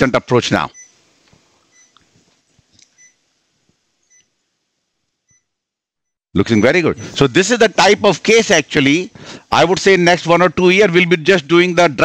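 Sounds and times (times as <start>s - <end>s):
low room noise: 0.0s - 12.0s
patient monitor two-tone beeping: 0.7s - 1.0s, 1.7s - 2.0s, 6.4s - 7.3s.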